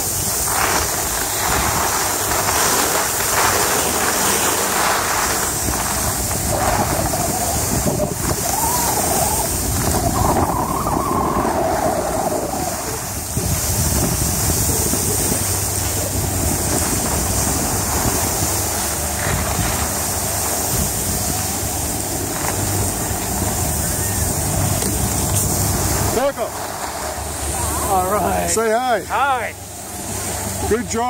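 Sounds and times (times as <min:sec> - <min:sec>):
skis sliding over snow: 0:00.0 - 0:31.0
wind rushing over microphone: 0:00.0 - 0:31.0.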